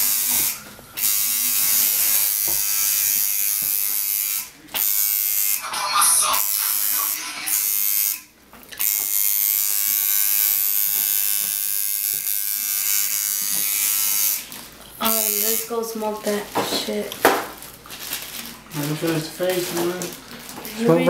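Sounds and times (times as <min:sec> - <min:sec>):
tattoo machine buzzing: 0:00.0 - 0:16.3.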